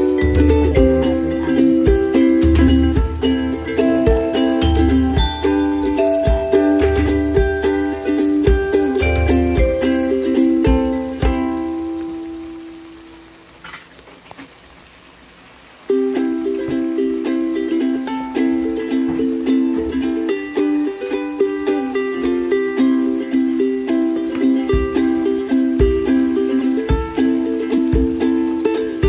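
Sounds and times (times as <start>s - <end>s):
plucked string music: 0.0s - 13.6s, 15.8s - 29.0s.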